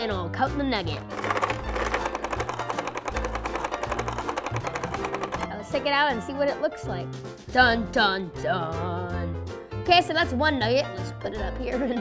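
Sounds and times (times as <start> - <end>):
clicking rattle of plastic crank: 1.0 - 5.8.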